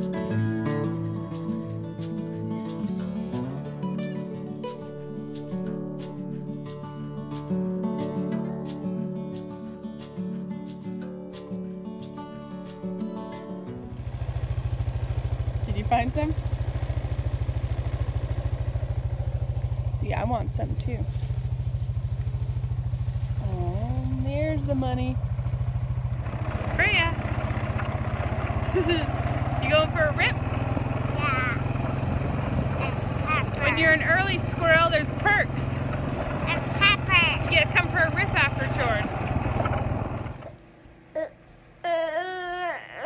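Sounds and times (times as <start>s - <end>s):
engine idling: 13.9s - 40.6s.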